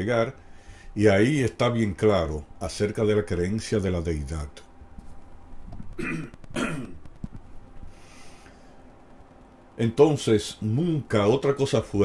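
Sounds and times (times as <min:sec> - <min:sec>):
man coughing and clearing throat: 0:06.0 - 0:07.0.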